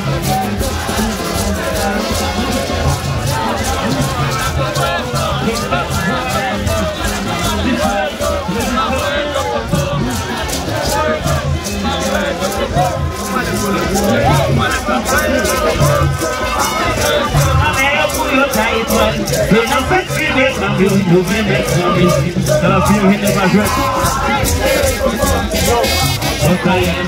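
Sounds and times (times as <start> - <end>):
crowd singing and shouting: 0.0 - 27.0
rattling percussion beat: 0.0 - 27.0.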